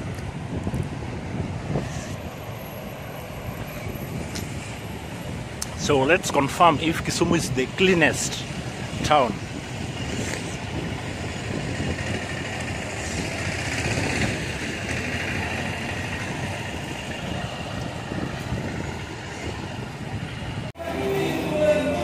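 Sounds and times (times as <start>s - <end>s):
road traffic noise: 0.0s - 22.0s.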